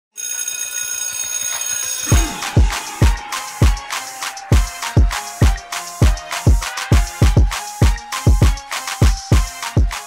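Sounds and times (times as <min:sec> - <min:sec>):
shimmering bell-like tones: 0:01.9 - 0:04.6.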